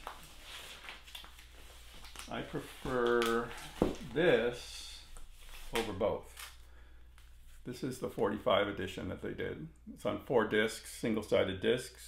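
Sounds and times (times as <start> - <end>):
record sleeves rustling: 0.0 - 6.6.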